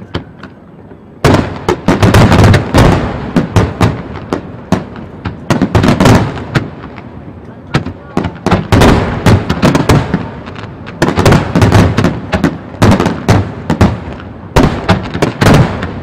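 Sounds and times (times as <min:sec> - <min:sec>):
fireworks bursting with rumble: 0:00.0 - 0:16.0.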